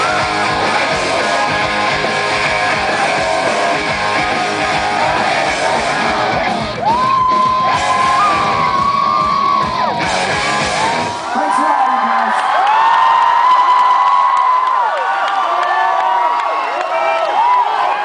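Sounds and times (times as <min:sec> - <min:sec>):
live rock band playing: 0:00.0 - 0:11.2
crowd screaming and cheering: 0:00.0 - 0:18.0.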